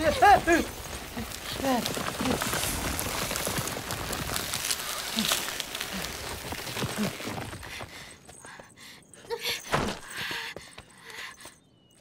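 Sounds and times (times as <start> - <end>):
foliage rustling and crackling: 0.0 - 7.9.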